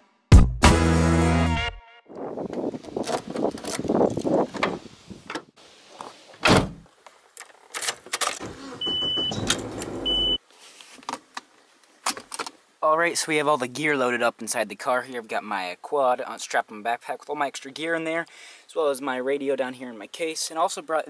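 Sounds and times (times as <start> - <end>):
car door shutting: 6.4 - 6.8, 8.4 - 10.4
key going into ignition: 7.8 - 10.2
short high beeps: 10.0 - 10.4.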